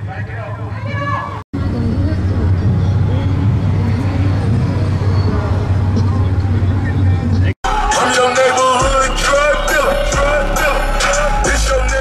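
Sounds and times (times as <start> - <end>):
background voices: 1.6 - 12.0
music with singing: 1.6 - 12.0
vehicle engine idling: 1.6 - 12.0.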